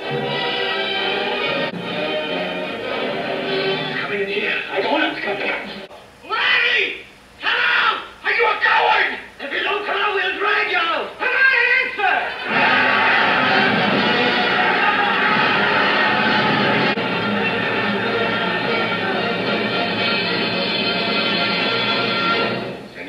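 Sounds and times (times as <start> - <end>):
orchestral score: 0.0 - 4.1, 12.4 - 22.8.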